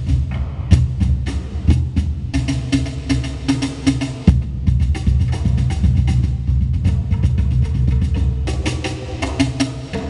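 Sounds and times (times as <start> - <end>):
cajons played by hand: 0.0 - 10.0.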